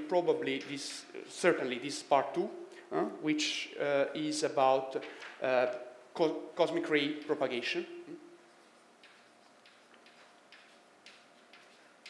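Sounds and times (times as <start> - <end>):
chalk writing on blackboard: 8.4 - 12.0.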